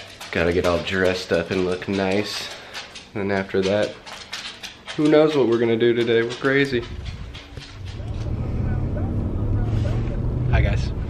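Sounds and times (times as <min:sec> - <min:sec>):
person speaking: 0:00.0 - 0:04.2, 0:04.8 - 0:11.0
faint voices: 0:05.0 - 0:11.0.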